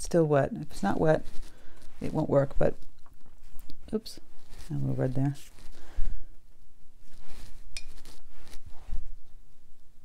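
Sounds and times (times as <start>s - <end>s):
brush tapping and clinking: 7.7s - 8.2s.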